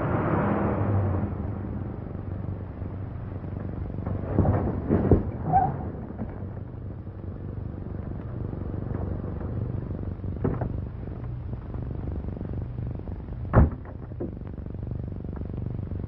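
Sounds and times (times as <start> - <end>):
car engine rumbling: 0.0 - 16.0.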